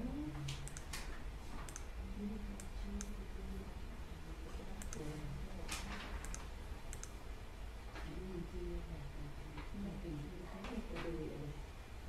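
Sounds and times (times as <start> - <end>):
low steady hum: 0.0 - 12.0
soft rush of noise: 0.0 - 12.0
faint sharp clicks: 0.4 - 1.9, 2.6 - 3.2, 4.8 - 5.1, 5.7 - 7.2.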